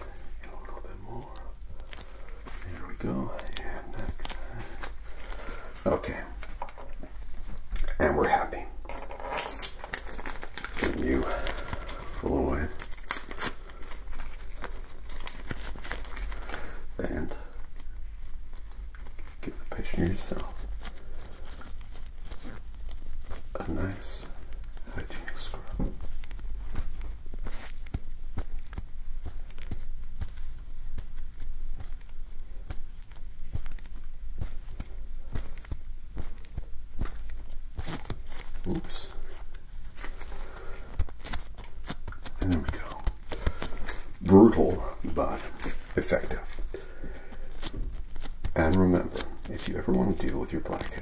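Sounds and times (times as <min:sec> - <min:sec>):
medical glove crinkling: 0:00.0 - 0:51.0.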